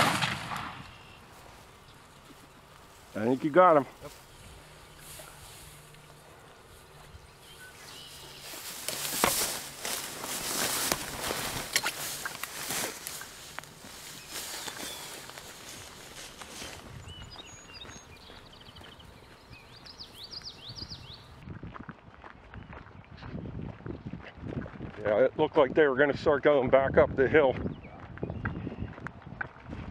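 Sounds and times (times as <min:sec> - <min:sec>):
footsteps on dirt and gravel: 0:00.0 - 0:25.1
bird chirps: 0:00.8 - 0:03.4, 0:04.0 - 0:13.3, 0:13.9 - 0:21.4
footsteps through tall grass: 0:00.9 - 0:22.6.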